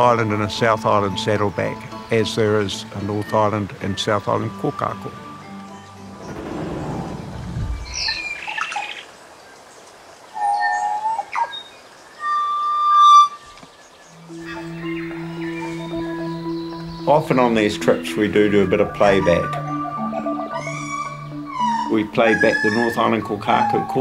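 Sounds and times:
bird singing organ-like notes: 0:00.0 - 0:09.6, 0:10.4 - 0:24.0
low music drone: 0:04.2 - 0:08.5, 0:14.2 - 0:23.8
short higher bird calls: 0:06.1 - 0:09.2, 0:18.5 - 0:24.0.

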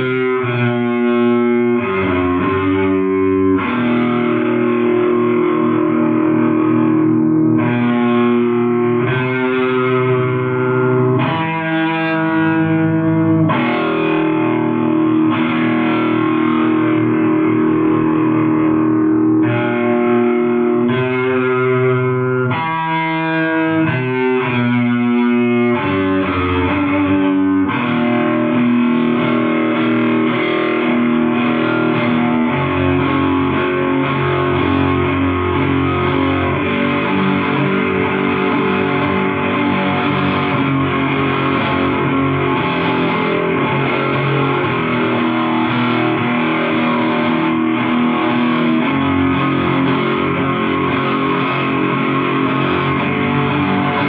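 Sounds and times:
distorted electric guitar riff: 0:00.0 - 0:54.0.

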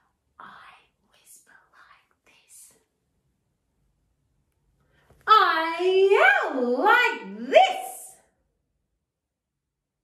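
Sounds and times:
person whispering: 0:00.0 - 0:02.9.

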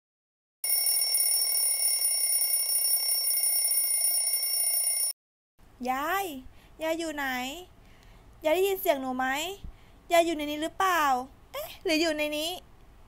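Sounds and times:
bell ringing: 0:00.6 - 0:05.1.

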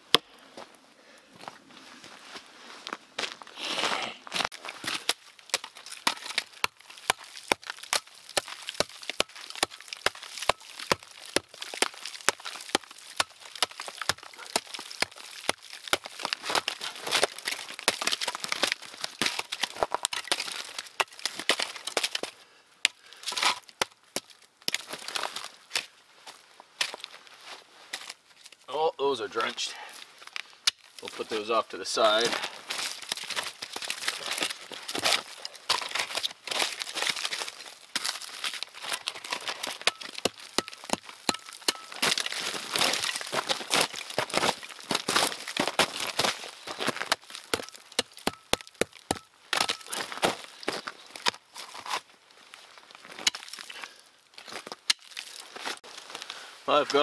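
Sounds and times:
wood cracking and splintering: 0:04.3 - 0:26.0, 0:27.9 - 0:57.0
tomahawk chopping kindling: 0:04.4 - 0:25.9, 0:27.9 - 0:52.1, 0:53.0 - 0:57.0.

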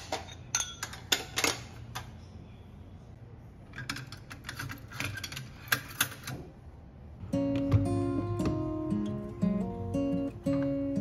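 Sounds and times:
ceramic bowls clinking: 0:00.0 - 0:02.1.

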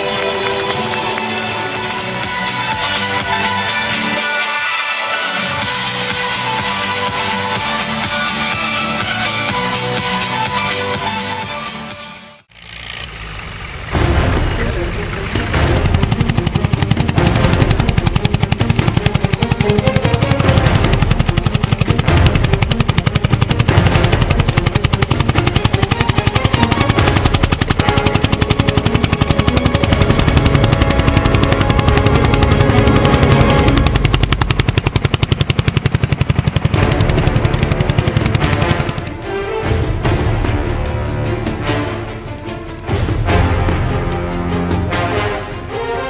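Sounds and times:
music: 0:00.0 - 0:12.5, 0:13.9 - 0:46.0
tractor engine running: 0:00.0 - 0:46.0.

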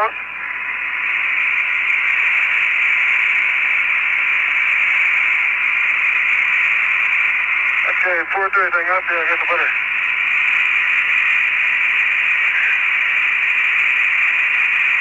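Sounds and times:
radio channel hiss: 0:00.0 - 0:15.0.

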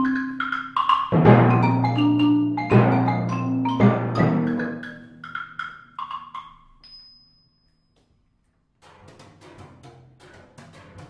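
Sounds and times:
marimba notes: 0:00.0 - 0:06.6.

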